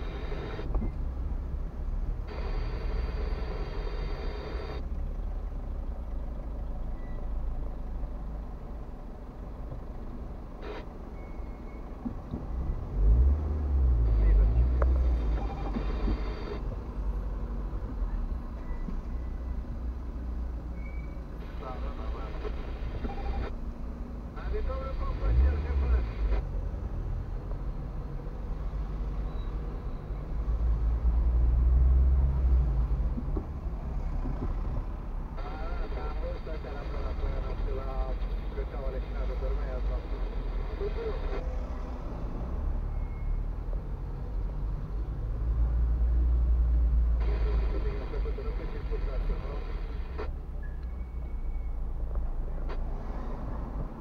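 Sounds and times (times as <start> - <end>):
car engine rumble: 0.0 - 54.0
road noise: 0.0 - 54.0
muffled talk: 47.2 - 50.3.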